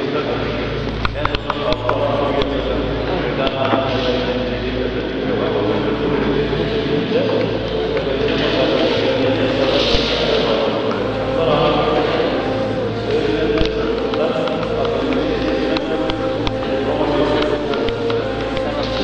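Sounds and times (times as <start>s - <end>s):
men chanting in long held tones: 0.0s - 19.0s
steady low hum: 0.0s - 19.0s.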